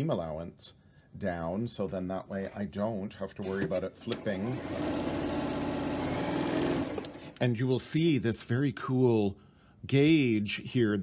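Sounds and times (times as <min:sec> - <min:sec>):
sewing machine stitching: 0:03.4 - 0:07.4.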